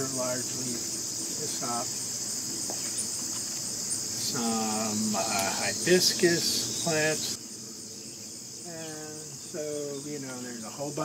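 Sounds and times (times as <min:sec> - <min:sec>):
high-pitched insect chorus: 0:00.0 - 0:11.0
man saying uh: 0:04.2 - 0:07.4, 0:08.6 - 0:11.0.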